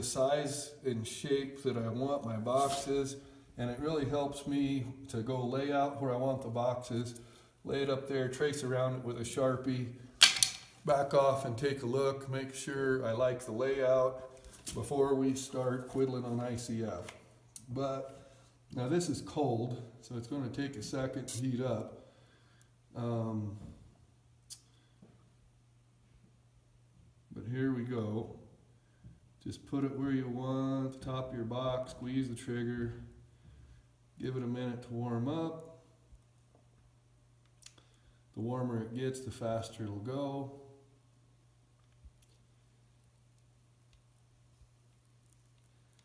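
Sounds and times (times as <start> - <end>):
faint low hum: 0.0 - 46.0.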